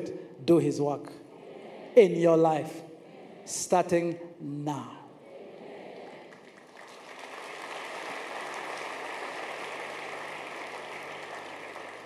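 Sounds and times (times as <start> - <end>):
congregation applauding: 5.9 - 12.0.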